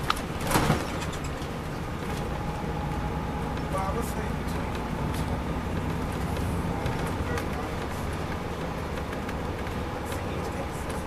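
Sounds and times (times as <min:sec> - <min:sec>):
bus engine rumble: 0:00.0 - 0:11.0
road noise: 0:00.0 - 0:11.0
light clicks and rattles: 0:03.5 - 0:11.0.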